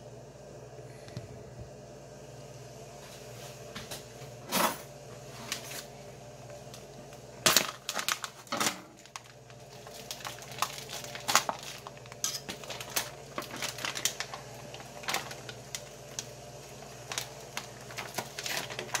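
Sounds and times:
plastic pouch crinkling: 7.4s - 19.0s.

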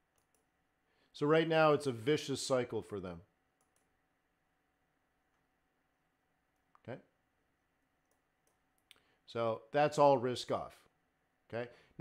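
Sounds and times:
faint computer mouse clicks: 0.1s - 0.5s, 3.6s - 3.9s.

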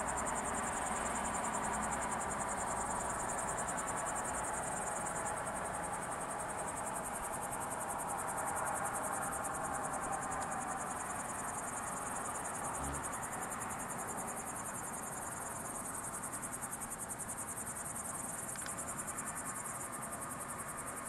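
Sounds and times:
crickets trilling: 0.0s - 21.0s.

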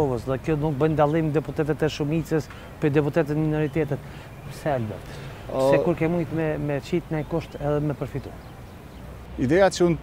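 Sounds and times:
man speaking: 0.0s - 8.4s.

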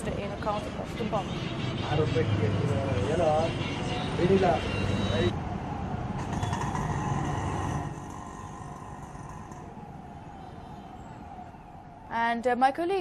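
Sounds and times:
street traffic hum: 0.0s - 13.0s.

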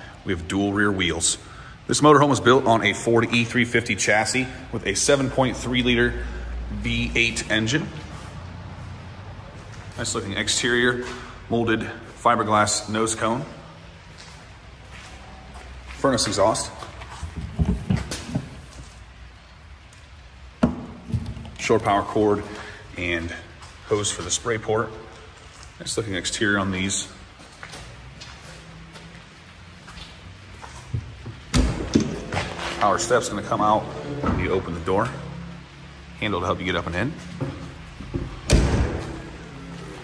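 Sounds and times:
door slamming shut: 38.4s - 39.3s.

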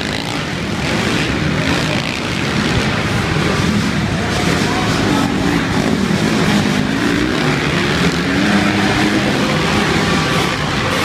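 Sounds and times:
motocross bike engines revving: 0.0s - 11.0s.

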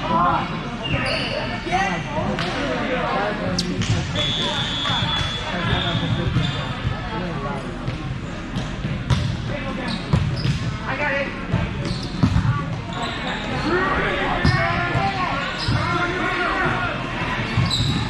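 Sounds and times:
shoe squeaks: 0.8s - 1.6s, 4.2s - 6.8s, 11.8s - 12.2s, 12.9s - 13.6s, 17.6s - 18.0s
players and spectators calling: 3.2s - 6.8s, 12.8s - 18.0s.

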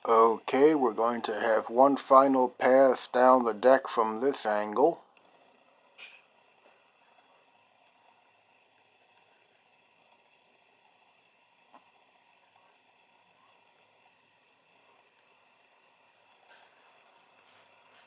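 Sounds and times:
faint room hiss: 0.0s - 18.0s.

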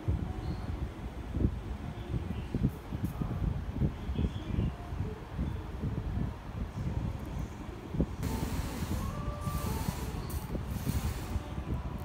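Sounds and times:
solder flux sizzling: 8.2s - 12.0s.

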